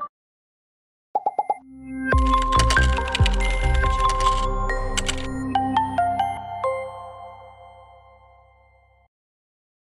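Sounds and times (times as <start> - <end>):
music with steady beat: 2.2 - 4.9.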